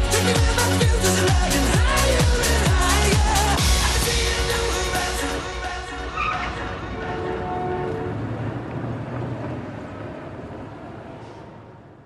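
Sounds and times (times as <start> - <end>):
song: 0.0 - 8.2
street traffic: 0.1 - 12.0
bus engine passing: 3.4 - 12.0.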